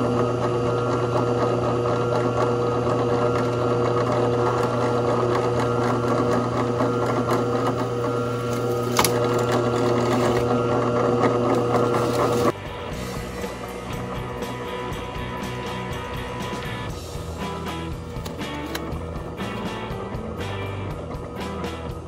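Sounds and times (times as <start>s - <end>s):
scroll saw cutting metal: 2.2s - 12.5s.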